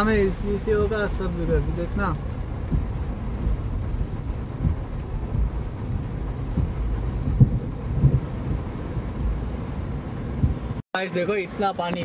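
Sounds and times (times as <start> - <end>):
heavy rain on car roof: 0.0 - 12.0
brief low thumps: 2.6 - 10.8.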